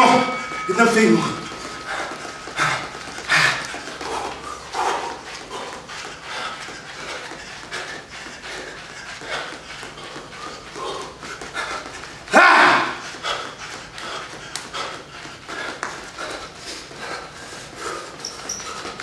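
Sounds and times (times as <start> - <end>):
man whooping: 12.3 - 13.0.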